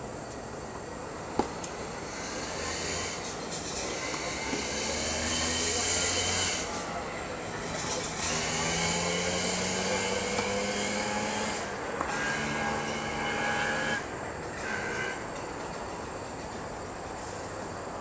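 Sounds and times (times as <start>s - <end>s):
mechanical hum and hiss: 0.0s - 18.0s.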